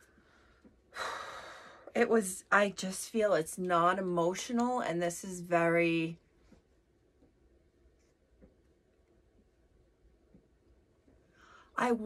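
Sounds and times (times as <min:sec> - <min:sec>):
woman breathing: 0:00.0 - 0:02.0, 0:11.2 - 0:11.8.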